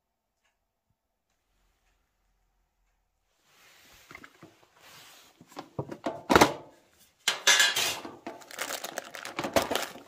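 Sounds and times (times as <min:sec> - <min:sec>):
metal tin lid clanking: 0:07.3 - 0:08.4
plastic crinkling: 0:08.1 - 0:10.0.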